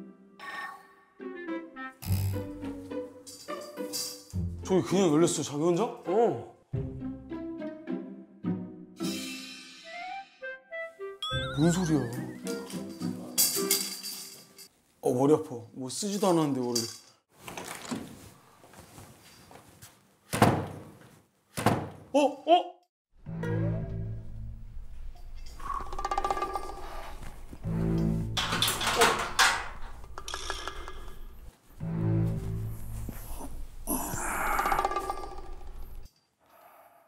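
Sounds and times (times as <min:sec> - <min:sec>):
background music: 0:00.0 - 0:14.6, 0:23.2 - 0:30.7, 0:31.8 - 0:35.9.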